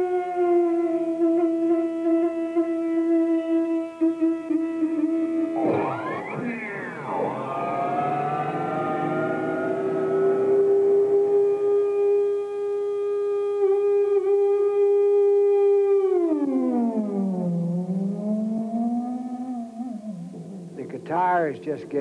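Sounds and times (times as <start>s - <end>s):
electric guitar sustained notes: 5.4s - 15.1s.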